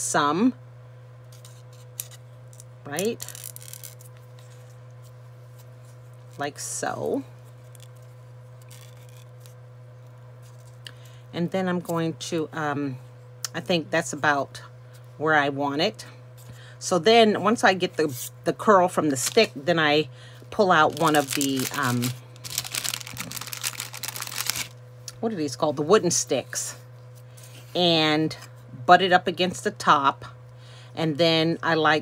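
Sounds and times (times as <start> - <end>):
steady low hum: 0.0 - 32.0
plastic bag crinkling: 1.8 - 4.7, 7.6 - 9.6, 19.1 - 19.6, 20.8 - 24.8
paper rustling: 3.0 - 4.7, 7.6 - 9.6, 20.9 - 24.7.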